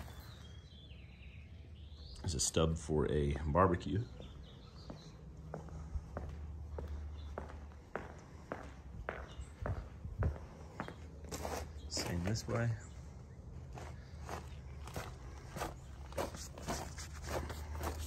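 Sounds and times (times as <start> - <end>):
footsteps on concrete: 4.1 - 18.0.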